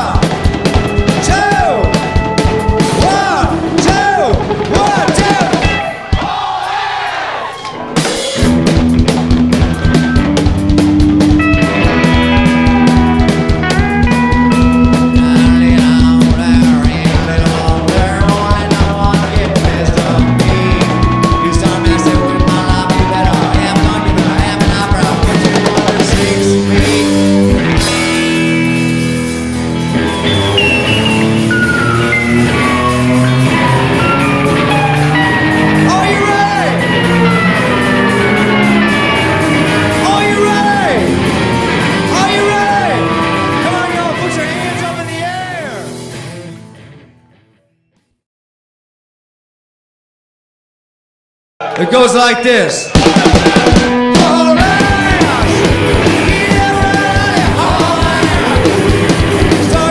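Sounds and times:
rock band playing: 0.0 - 47.8, 51.6 - 59.9
person singing: 2.8 - 5.8, 11.4 - 27.6, 32.8 - 45.7, 52.9 - 59.9.

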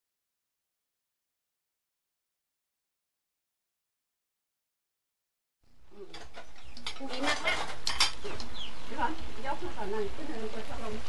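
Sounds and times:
metal ladle scraping a pot: 6.1 - 8.4.

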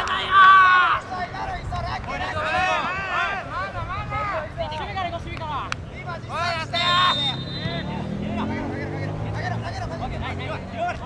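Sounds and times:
players shouting: 0.0 - 11.0
vehicle engine droning: 6.4 - 11.0.

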